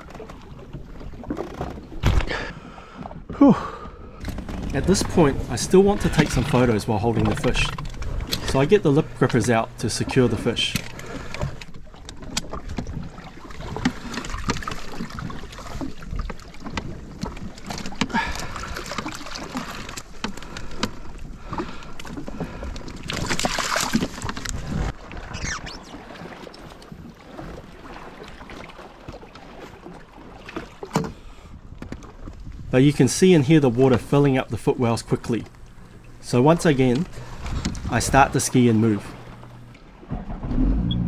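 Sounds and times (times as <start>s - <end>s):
seawater running in: 0.0s - 31.5s, 32.8s - 41.0s
fishing gear clicking and knocking: 4.2s - 5.2s, 6.0s - 13.0s, 13.7s - 24.6s.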